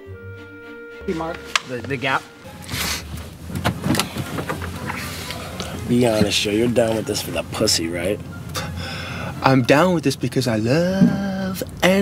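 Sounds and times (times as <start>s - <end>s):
rustling: 1.1s - 7.4s.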